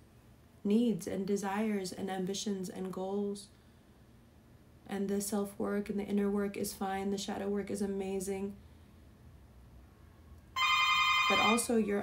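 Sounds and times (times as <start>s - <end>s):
electronic doorbell tone: 10.6s - 11.8s.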